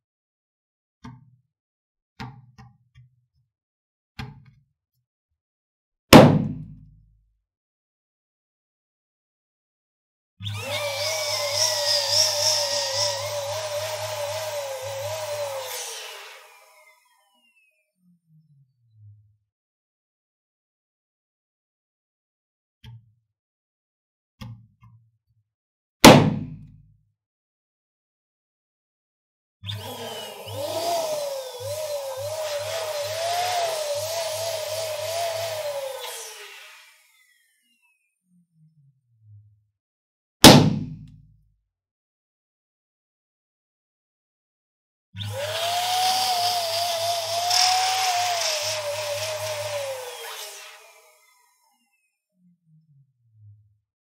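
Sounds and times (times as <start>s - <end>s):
balloon pump motor hum: 10.4s - 17.8s, 29.7s - 37.8s, 45.2s - 52.0s.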